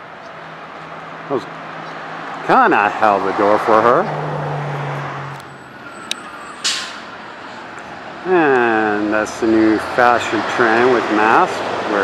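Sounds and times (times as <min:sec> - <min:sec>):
vehicle engine humming: 0:00.0 - 0:12.0
short hiss: 0:06.6 - 0:07.0.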